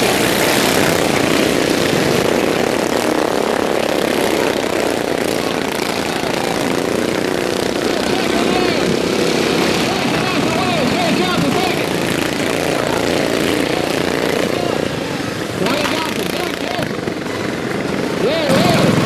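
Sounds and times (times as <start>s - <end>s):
racing lawnmower engines at high revs: 0.0s - 19.0s.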